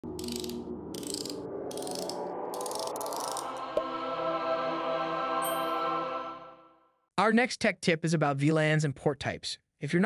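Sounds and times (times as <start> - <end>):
sustained low electronic tones: 0.0 - 5.4
fast clicking texture: 0.1 - 3.5
music: 0.2 - 7.1.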